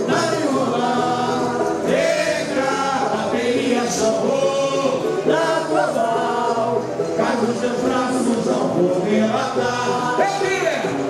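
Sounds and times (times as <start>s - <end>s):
group singing samba: 0.0s - 11.0s.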